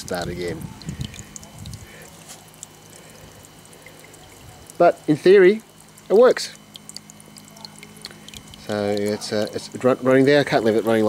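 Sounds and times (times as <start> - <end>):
water dribbling from hole: 0.0 - 11.0
water trickling: 0.0 - 11.0.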